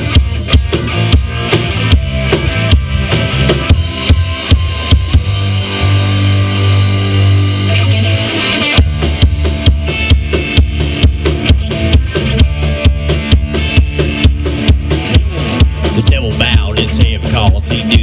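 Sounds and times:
bass guitar: 0:00.0 - 0:18.0
drum beat: 0:00.0 - 0:18.0
electric guitar: 0:00.0 - 0:18.0.

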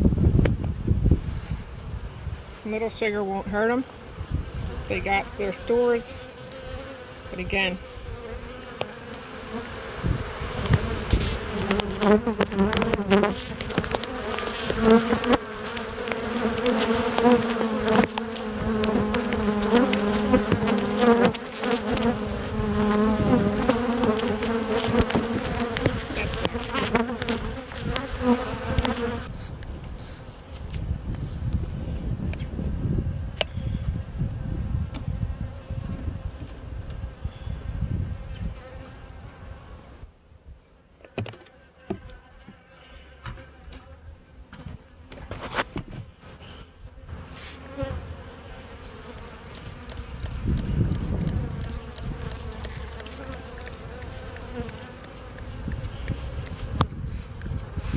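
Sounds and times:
bees buzzing: 0:02.7 - 0:29.4, 0:46.4 - 0:57.9.

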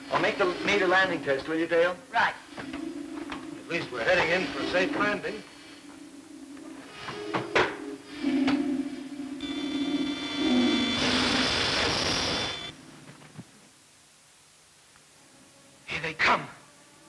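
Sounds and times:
high steady whine: 0:00.0 - 0:15.2
low electronic hum: 0:02.3 - 0:15.2.

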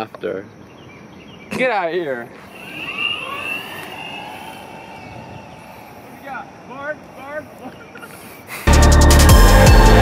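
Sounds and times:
low outdoor rumble: 0:02.2 - 0:08.2.

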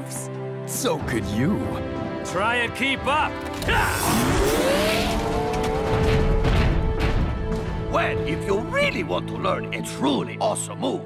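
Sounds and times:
background music: 0:00.0 - 0:11.0
cartoon engine revving: 0:04.0 - 0:05.5.

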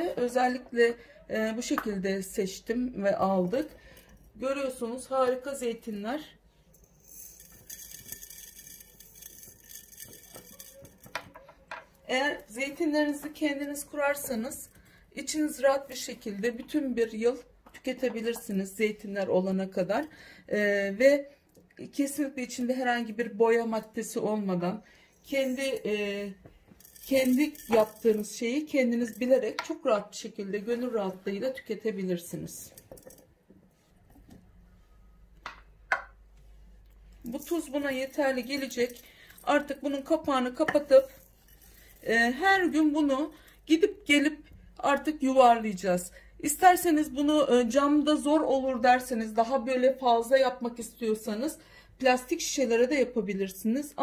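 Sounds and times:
olives and salt clicking in jar: 0:07.4 - 0:11.9, 0:26.8 - 0:28.3.

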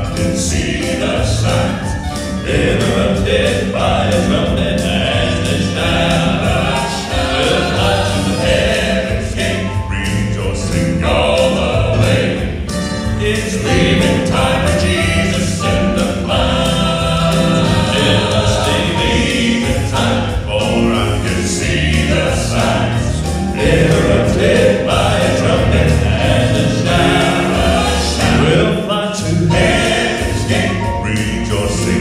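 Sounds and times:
male quartet singing in harmony: 0:00.0 - 0:32.0
piano accompaniment: 0:00.0 - 0:32.0.

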